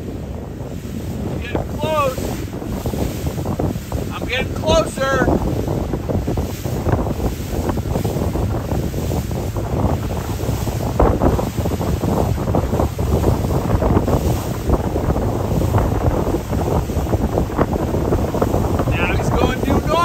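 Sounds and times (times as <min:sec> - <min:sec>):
waves washing: 0:00.0 - 0:20.0
wind buffeting microphone: 0:00.0 - 0:20.0.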